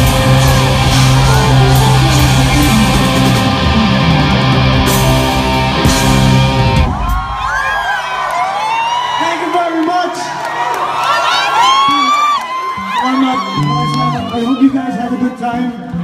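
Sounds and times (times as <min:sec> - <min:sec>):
rock band chord with electric guitar: 0:00.0 - 0:07.4
audience cheering and whooping: 0:00.0 - 0:15.9.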